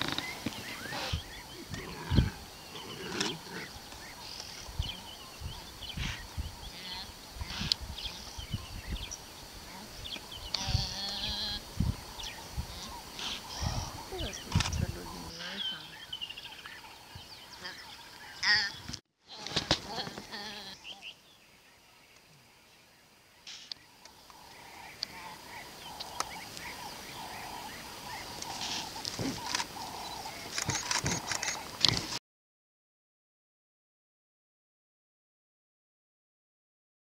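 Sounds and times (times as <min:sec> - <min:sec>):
fawn bleating: 0:10.5 - 0:11.6.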